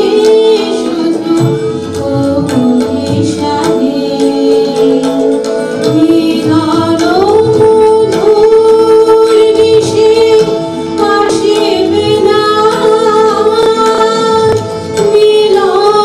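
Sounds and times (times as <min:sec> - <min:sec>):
harmonium: 0:00.0 - 0:16.0
tabla: 0:00.0 - 0:16.0
violin: 0:00.0 - 0:16.0
women singing: 0:00.0 - 0:16.0.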